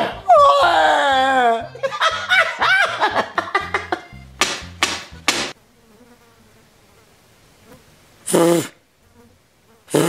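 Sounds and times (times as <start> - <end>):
wailing voice: 0.0 - 1.8
flies buzzing: 3.6 - 10.0.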